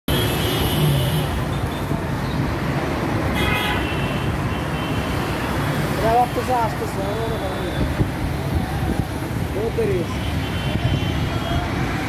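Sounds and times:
traffic engines rumbling: 0.1s - 12.0s
vehicle horn: 3.4s - 5.0s.

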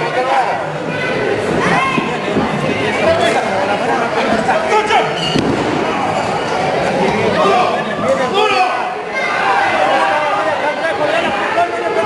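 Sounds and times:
spectators shouting and chattering: 0.0s - 12.0s.

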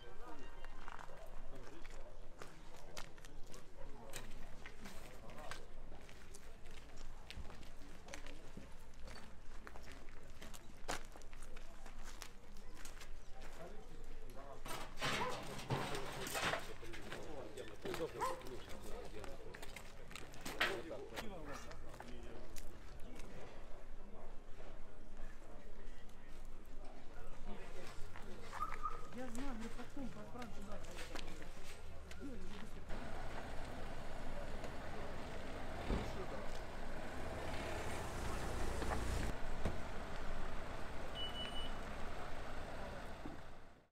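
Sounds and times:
vehicle engine rumble: 32.7s - 43.9s
indistinct voices: 32.8s - 43.7s
short high beep: 41.1s - 41.8s.

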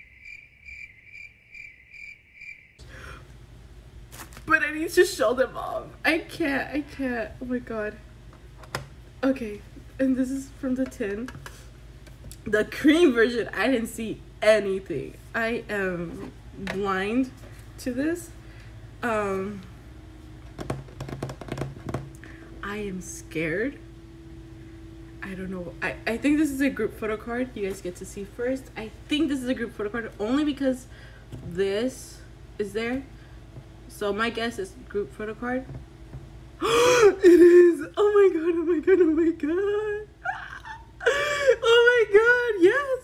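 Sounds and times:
cricket chirping: 0.0s - 2.8s
low room hum: 0.0s - 43.0s.

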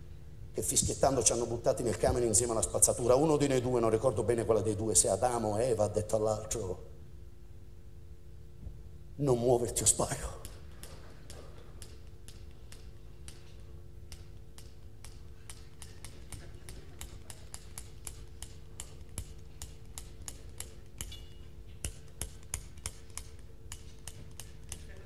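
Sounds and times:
low steady hum: 0.0s - 25.0s
sharp irregular clicks: 10.4s - 21.2s.

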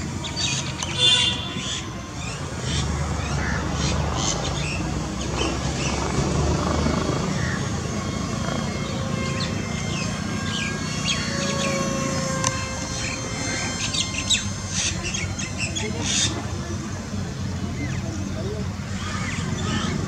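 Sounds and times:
small birds chirping: 0.1s - 16.4s.

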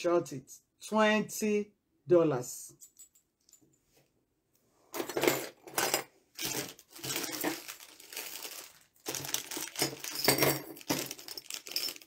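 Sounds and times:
metal jewelry clinking: 2.8s - 3.8s, 5.0s - 12.0s
plastic bags rustling: 6.3s - 12.0s.

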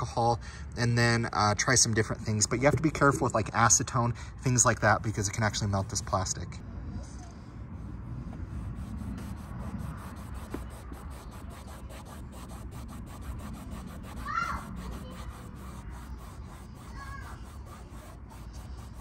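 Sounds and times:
towel rubbing plastic: 8.4s - 19.0s.

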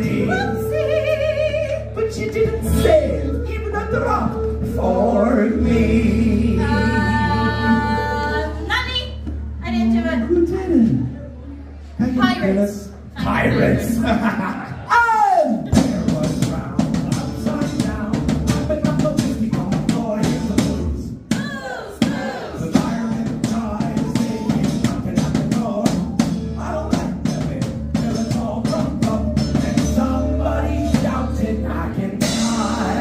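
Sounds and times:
acoustic guitar: 0.0s - 10.0s, 15.6s - 33.0s
drum kit beat: 15.5s - 33.0s
live rock band: 15.6s - 21.3s, 22.1s - 33.0s.

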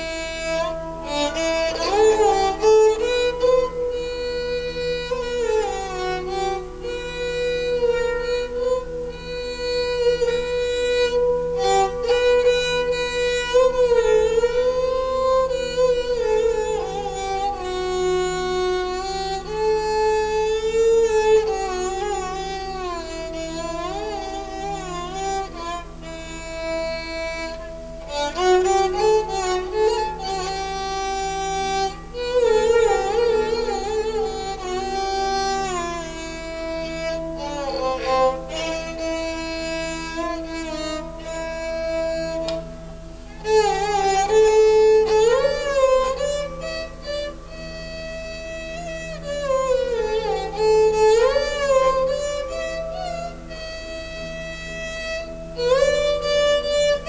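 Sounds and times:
bowed string melody: 0.0s - 57.0s.

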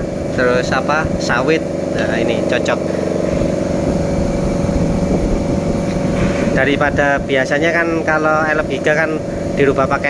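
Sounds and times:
machine engine humming: 0.0s - 10.0s.

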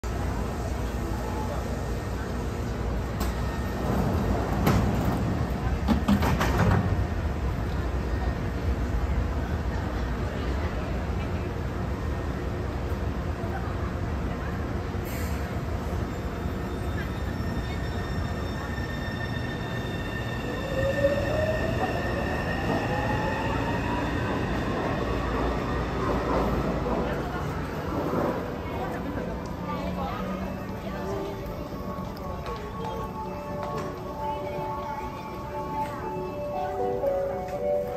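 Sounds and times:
train low rumble: 0.0s - 37.9s.

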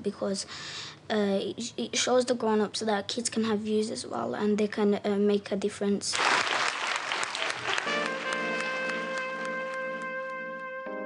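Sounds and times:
children applauding: 6.2s - 10.1s
music with sustained notes: 7.6s - 11.0s.

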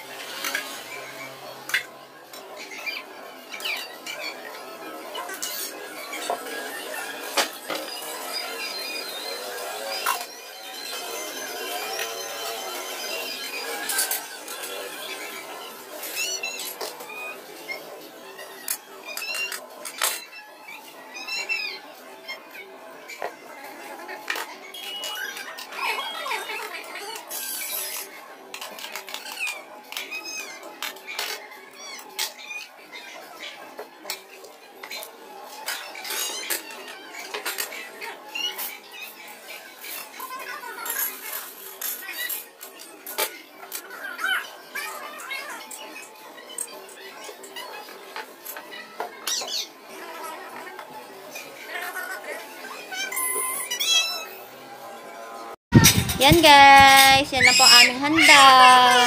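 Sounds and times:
faint background music: 0.0s - 59.0s.

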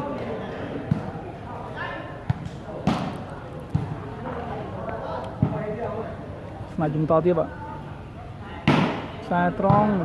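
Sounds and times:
volleyball hand slaps: 2.3s - 3.9s.

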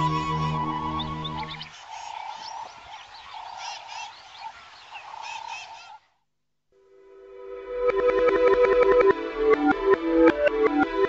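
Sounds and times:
cartoon music: 0.0s - 1.6s
birds chirping: 0.0s - 6.0s
frogs croaking: 0.1s - 6.2s.

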